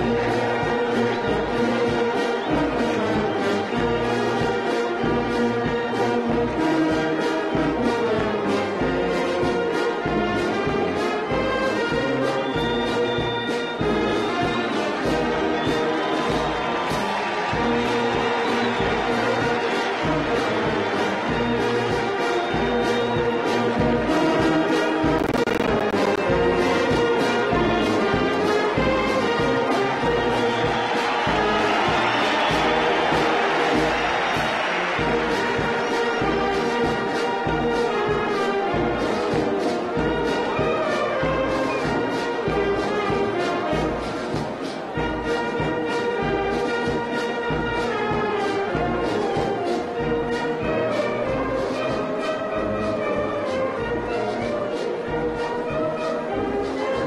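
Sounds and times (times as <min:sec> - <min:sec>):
steady drum beat: 0:00.0 - 0:52.1
brass band playing a march: 0:00.0 - 0:57.0.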